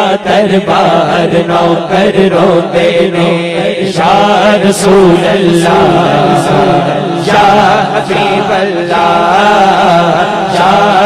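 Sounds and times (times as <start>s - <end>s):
man singing melodic lines: 0.0s - 11.0s.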